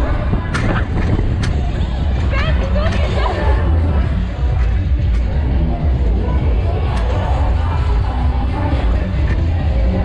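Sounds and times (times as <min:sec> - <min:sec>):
fairground music: 0:00.0 - 0:10.0
heavy low ride rumble: 0:00.0 - 0:10.0.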